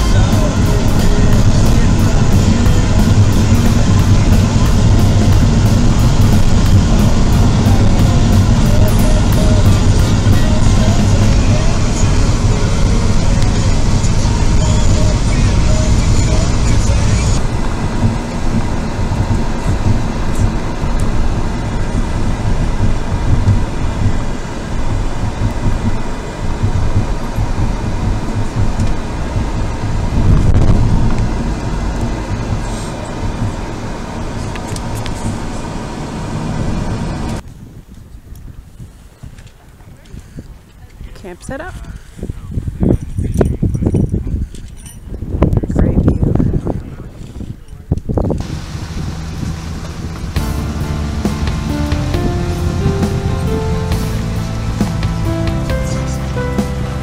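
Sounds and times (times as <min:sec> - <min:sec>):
music in vehicle: 0:00.0 - 0:37.4, 0:48.4 - 0:57.0
vehicle road noise: 0:00.0 - 0:38.0, 0:39.0 - 0:57.0.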